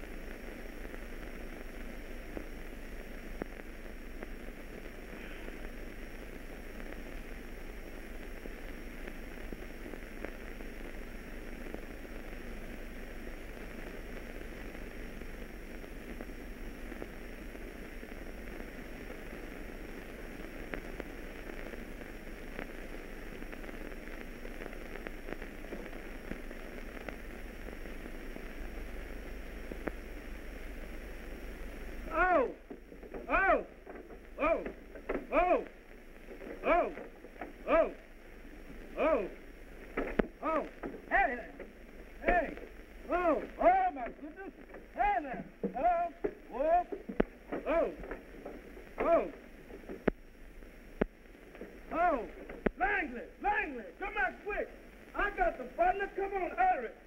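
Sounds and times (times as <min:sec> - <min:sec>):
film soundtrack hiss and crackle: 0:00.0 - 0:57.0
faint clicks: 0:16.9 - 0:30.1, 0:38.3 - 0:50.2, 0:50.9 - 0:52.8.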